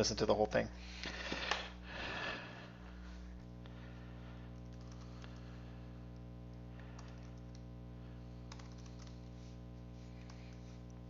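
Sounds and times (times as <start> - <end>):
low electrical hum: 0.0 - 11.0
typing on a keyboard: 7.0 - 7.6, 8.5 - 9.3.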